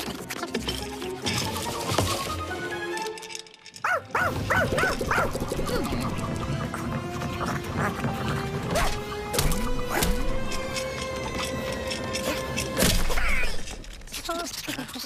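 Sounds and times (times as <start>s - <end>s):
cartoon background music: 0.0s - 13.9s
high dog yelps: 3.8s - 5.3s.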